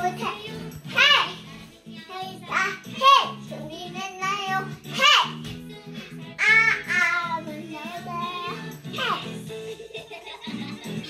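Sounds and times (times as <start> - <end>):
girl singing loudly: 0.0 - 5.5, 6.4 - 9.4
pop song in background: 0.0 - 11.0.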